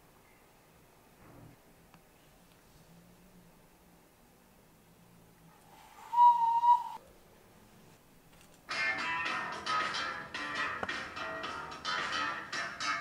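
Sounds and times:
high whistle note: 6.0s - 7.0s.

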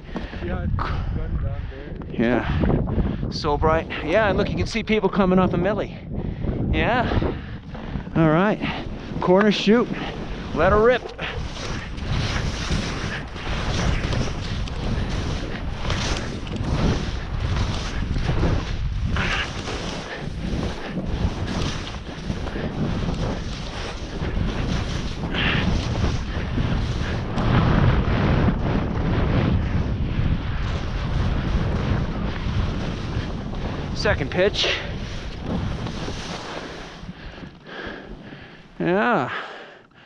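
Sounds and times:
wind rushing over microphone: 0.0s - 40.0s
skis scraping on snow: 6.8s - 39.7s.

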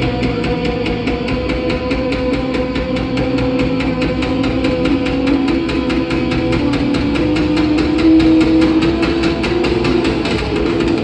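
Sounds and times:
distorted electric guitar chords: 0.0s - 11.0s
drums: 0.0s - 11.0s
steady cymbal beat: 0.0s - 11.0s.

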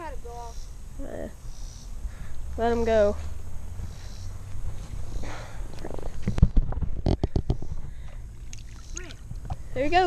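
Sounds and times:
fish splashing in water: 8.4s - 9.3s.

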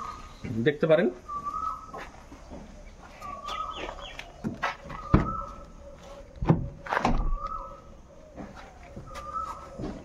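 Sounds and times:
bird calling: 0.0s - 10.0s.

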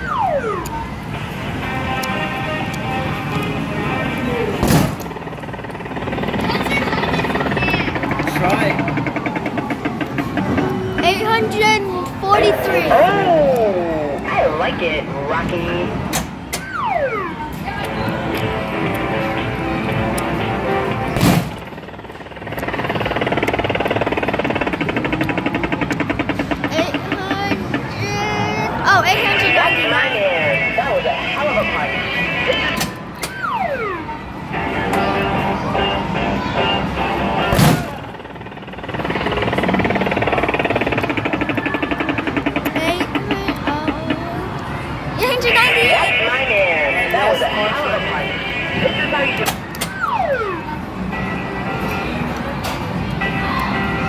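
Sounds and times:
arcade machine electronic music: 0.0s - 11.3s, 15.9s - 27.9s, 29.1s - 43.7s, 45.2s - 54.0s.

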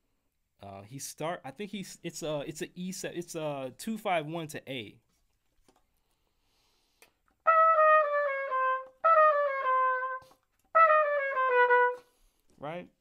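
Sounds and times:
trumpet playing quick phrases: 7.4s - 12.2s.

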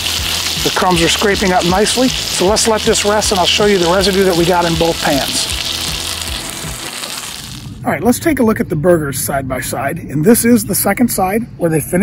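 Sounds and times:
burger patty sizzling in pan: 0.0s - 7.8s.

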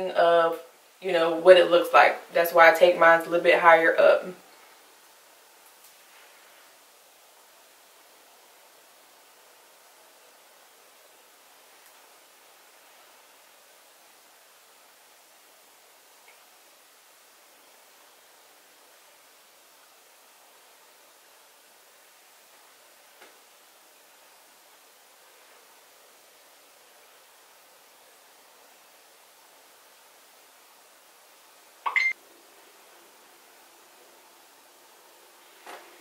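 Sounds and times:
faint room tone hiss: 0.0s - 36.0s
short sharp tone: 31.9s - 32.2s.

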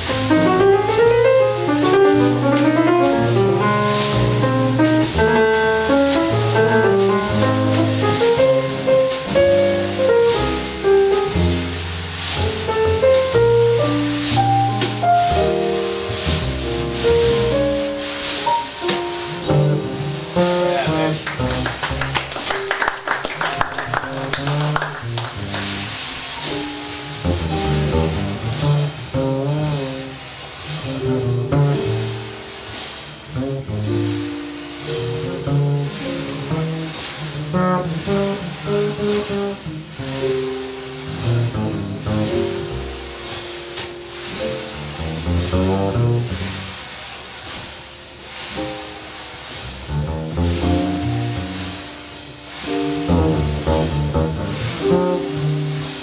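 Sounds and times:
brushes on snare drum: 0.0s - 56.0s
piano: 0.0s - 56.0s
upright bass: 0.0s - 56.0s.

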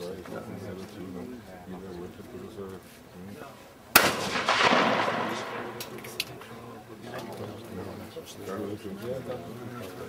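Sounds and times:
shotgun firing: 4.0s - 6.4s.

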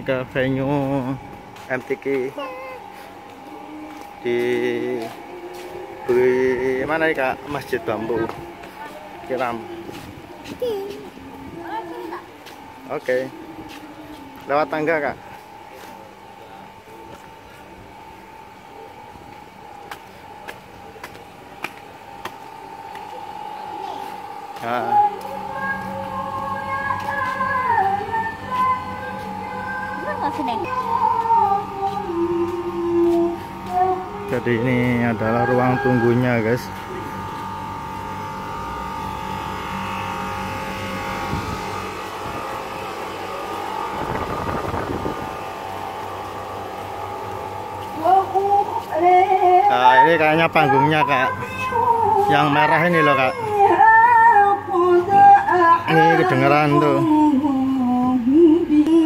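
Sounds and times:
air-conditioner units humming: 0.0s - 59.0s
footsteps on concrete: 2.9s - 6.0s, 13.6s - 14.5s, 19.8s - 23.2s.

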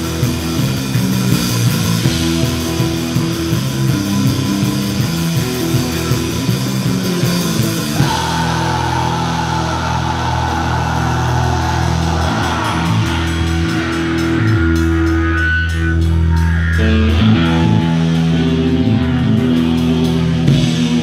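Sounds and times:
live punk band playing: 0.0s - 21.0s.

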